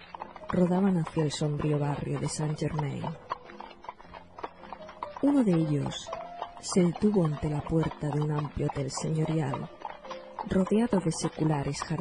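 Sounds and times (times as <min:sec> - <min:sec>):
horse hooves clip-clopping: 0:00.0 - 0:12.0.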